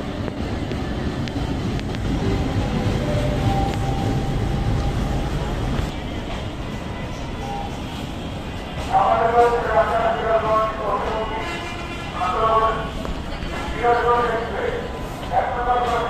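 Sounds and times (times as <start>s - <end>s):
train rolling low rumble: 0.0s - 16.0s.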